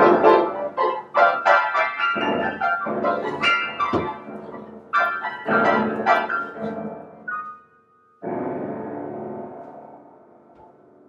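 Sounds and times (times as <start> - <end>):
piano note clusters: 0.0 - 11.0.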